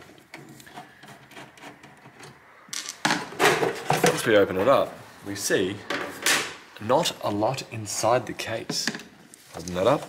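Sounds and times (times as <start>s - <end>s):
screwdriver scraping screw: 0.3s - 2.4s.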